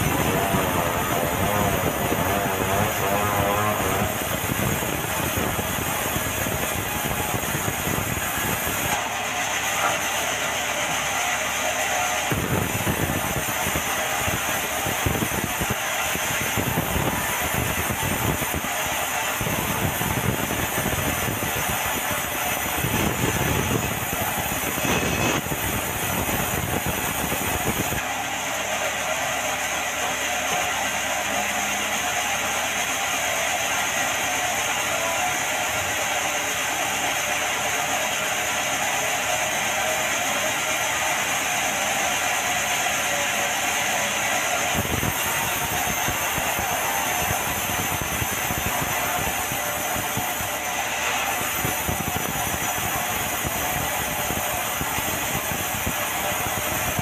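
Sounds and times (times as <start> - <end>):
band saw cutting timber: 0.0 - 55.3
sawmill machine rumble: 0.0 - 57.0.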